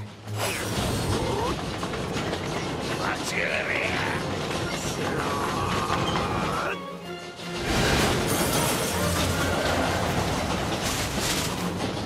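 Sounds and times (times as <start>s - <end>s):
train rail clatter and rumble: 0.0s - 12.0s.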